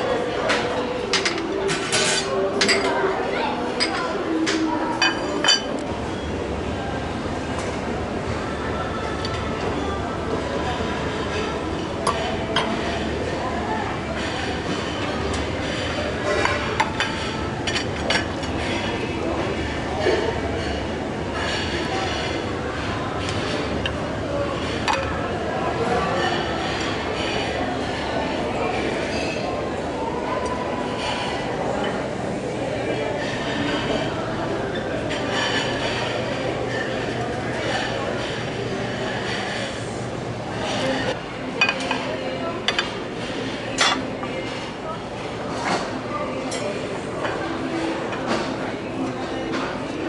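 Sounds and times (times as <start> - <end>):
utensils and dishes clattering: 0.0 - 6.2, 9.0 - 29.8, 30.4 - 50.0
dining hall din: 0.0 - 50.0.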